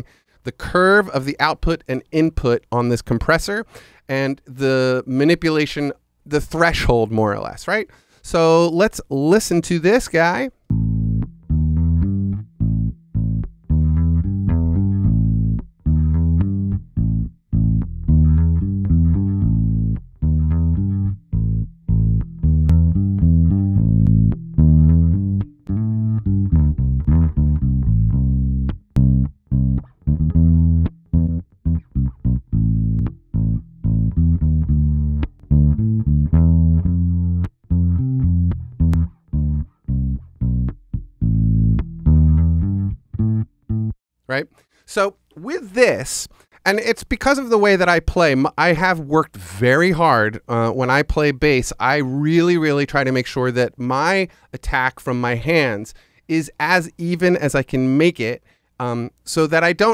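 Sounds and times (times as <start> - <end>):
electric bass plucked notes: 10.6 - 44.0.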